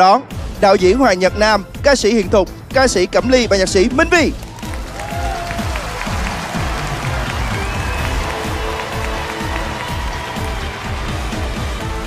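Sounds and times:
music with steady beat: 0.3s - 12.0s
studio audience applauding: 4.2s - 12.0s.

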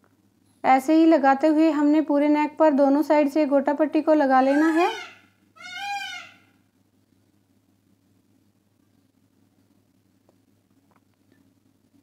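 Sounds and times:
faint low hum: 0.0s - 12.0s
high-pitched call: 4.5s - 6.5s.

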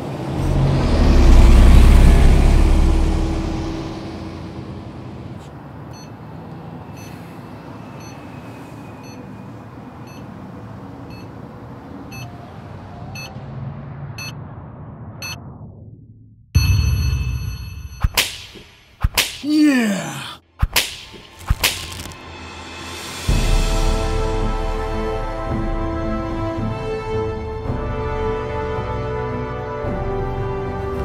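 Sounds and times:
traffic hum: 0.0s - 15.4s, 18.1s - 23.3s
vehicle passing: 0.0s - 15.4s.

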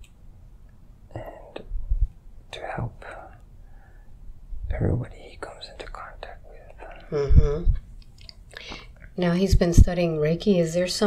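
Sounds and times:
man whispering: 1.1s - 1.7s, 2.5s - 3.5s, 4.7s - 7.8s.

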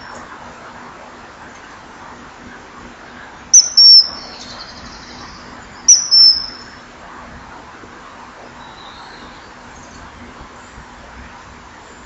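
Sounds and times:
kingfisher shrill whistles: 3.6s - 4.2s, 5.9s - 6.7s.

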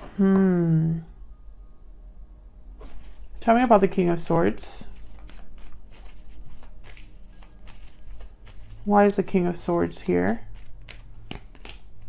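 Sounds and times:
person speaking: 0.0s - 1.1s, 3.4s - 5.1s, 8.8s - 10.6s
cards being shuffled: 4.9s - 12.0s.

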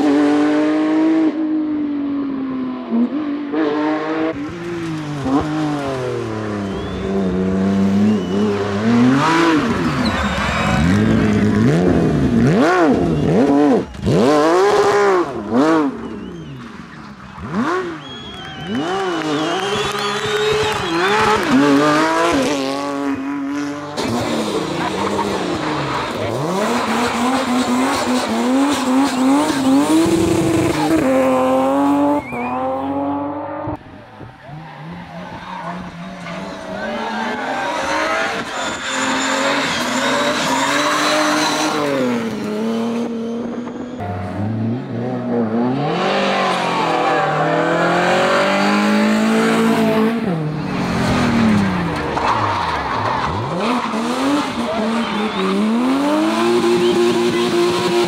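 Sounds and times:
race car engines revving: 0.0s - 58.0s
tyres squealing: 34.4s - 42.0s.

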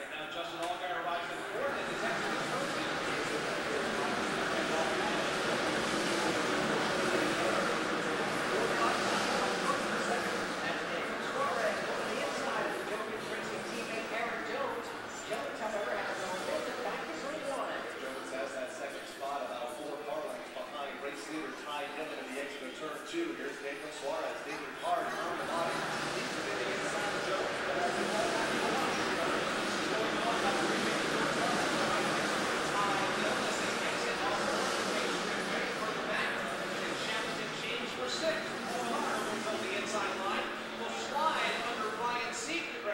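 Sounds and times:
indistinct chatter of people: 0.0s - 42.9s.

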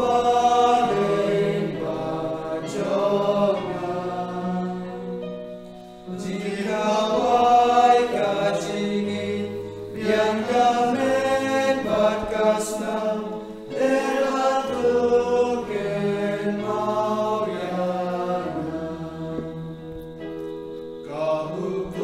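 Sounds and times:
voices singing a hymn: 0.0s - 22.0s.

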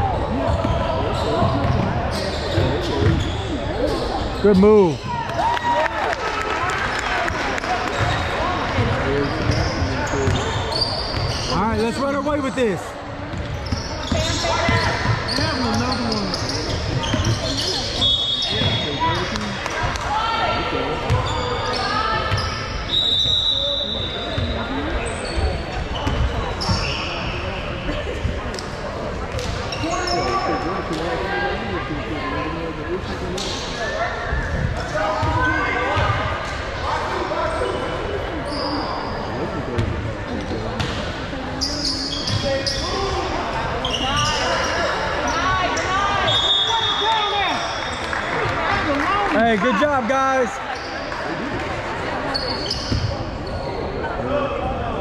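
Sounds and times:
sneaker squeaks: 0.0s - 5.3s, 7.8s - 20.4s, 21.0s - 31.1s, 37.3s - 48.6s, 50.7s - 54.2s
basketball bouncing on court: 1.4s - 3.4s.

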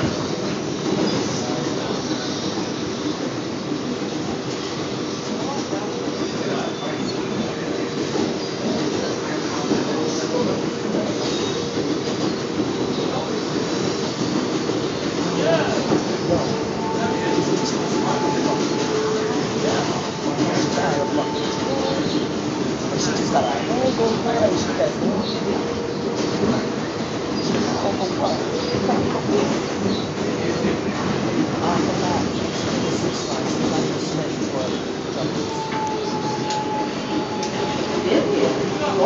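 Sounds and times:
subway car rumbling: 0.0s - 39.0s.

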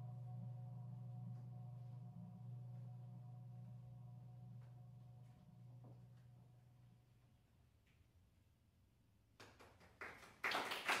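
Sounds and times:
audience applause: 9.5s - 11.0s.

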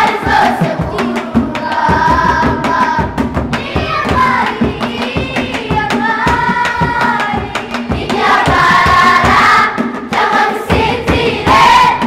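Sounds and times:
children's choir singing: 0.0s - 12.0s
steady percussion beat: 0.0s - 12.0s.

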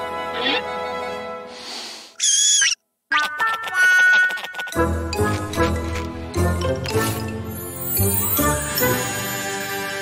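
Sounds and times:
cartoon squeak: 0.4s - 0.7s, 2.2s - 4.1s.

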